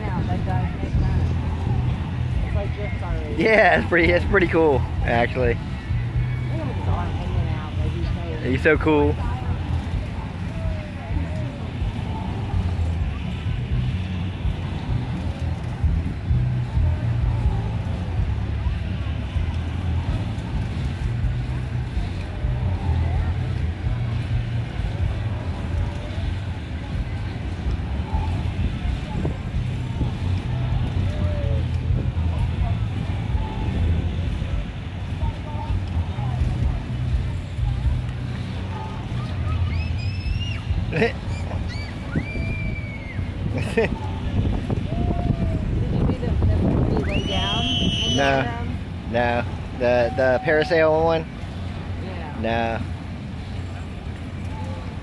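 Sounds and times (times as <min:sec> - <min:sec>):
carnival ride rumble: 0:00.0 - 0:55.0
crowd chatter: 0:00.0 - 0:55.0
faint fairground music: 0:00.0 - 0:55.0.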